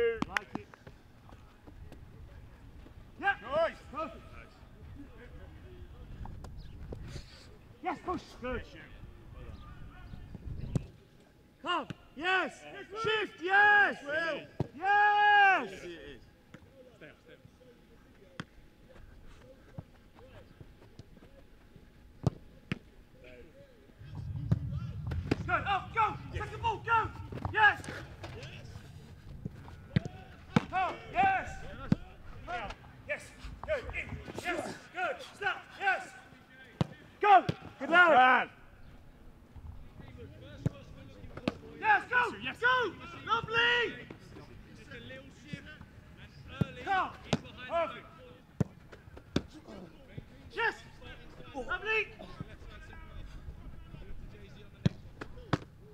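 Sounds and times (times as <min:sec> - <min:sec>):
man shouting: 0:11.7 - 0:15.8, 0:25.5 - 0:28.0, 0:37.2 - 0:38.4, 0:41.8 - 0:43.9
distant voices: 0:23.8 - 0:37.2.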